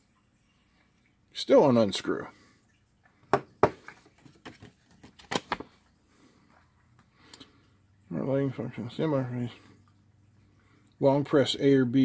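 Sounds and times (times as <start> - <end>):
paper rustling: 3.9 - 5.8.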